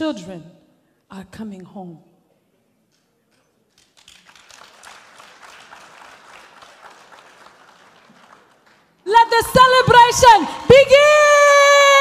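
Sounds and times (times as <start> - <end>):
audience applauding faintly: 3.4 - 9.0.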